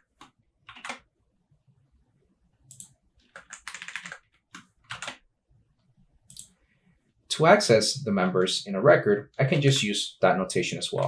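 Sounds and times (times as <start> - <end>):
computer keyboard keystrokes: 0.2 - 1.0, 2.7 - 5.2.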